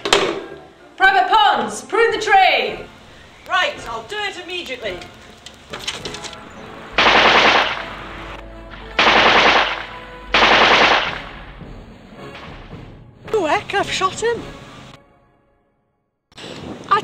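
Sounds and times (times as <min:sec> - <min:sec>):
machine-gun fire bursts: 0:07.0 - 0:08.0, 0:08.9 - 0:11.6.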